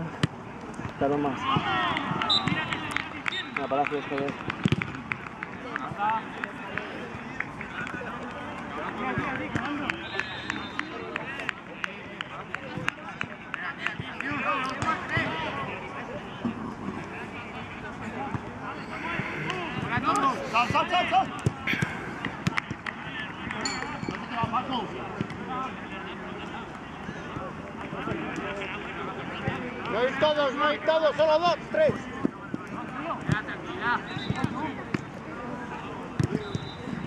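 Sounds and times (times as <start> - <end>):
people calling and shouting: 0.0 - 37.0.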